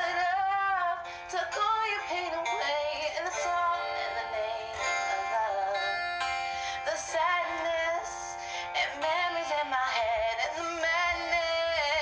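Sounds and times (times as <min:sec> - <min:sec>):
backing track: 0:00.0 - 0:12.0
woman singing a pop song: 0:00.0 - 0:12.0.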